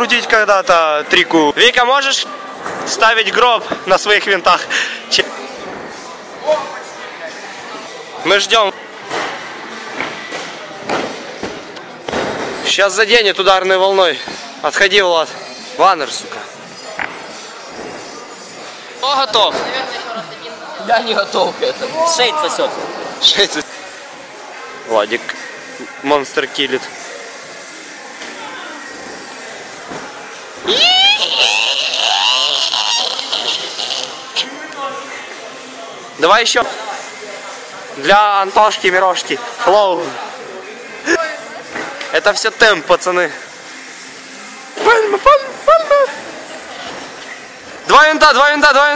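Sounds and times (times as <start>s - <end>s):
voices in a large hall: 0.0s - 48.9s
high-pitched shriek: 30.6s - 34.1s
people screaming and yelling: 30.6s - 34.5s.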